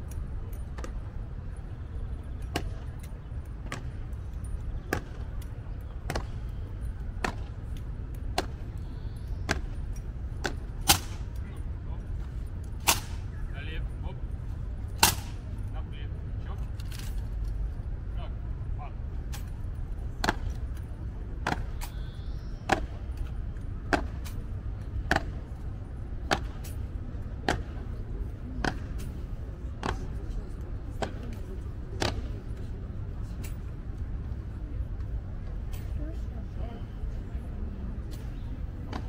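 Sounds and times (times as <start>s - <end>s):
faint onlookers' voices: 0.0s - 39.0s
steady low rumble: 0.0s - 39.0s.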